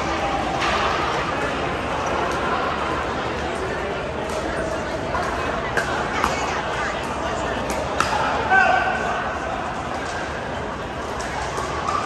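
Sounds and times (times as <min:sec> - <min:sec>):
echoing chatter: 0:00.0 - 0:12.0.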